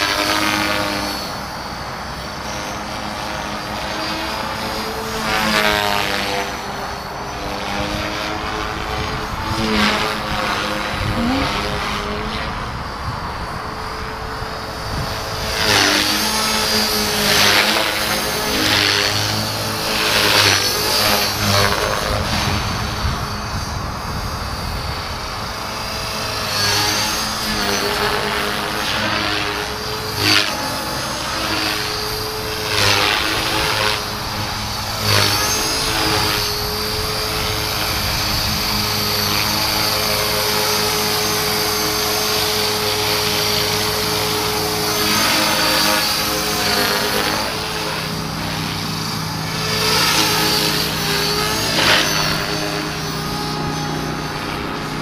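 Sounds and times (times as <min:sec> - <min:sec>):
rotor blades swishing: 0:00.0 - 0:13.0, 0:13.8 - 0:55.0
rc helicopter motor whine: 0:00.0 - 0:55.0.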